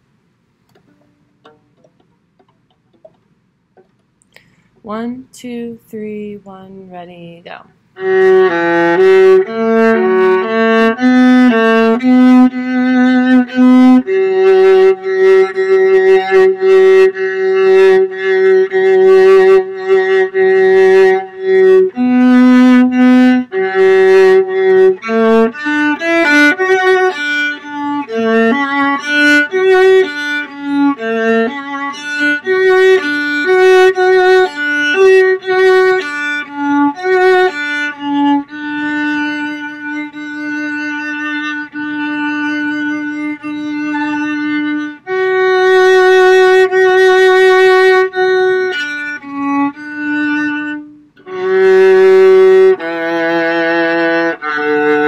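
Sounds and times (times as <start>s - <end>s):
solo viola bowed: 8.0s - 55.0s.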